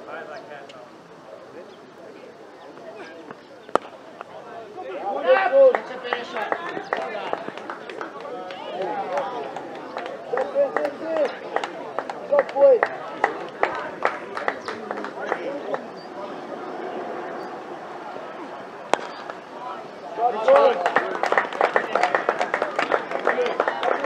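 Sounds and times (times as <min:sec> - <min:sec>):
players shouting: 0:03.0 - 0:24.0
bat striking ball: 0:03.7 - 0:04.3, 0:18.9 - 0:19.4.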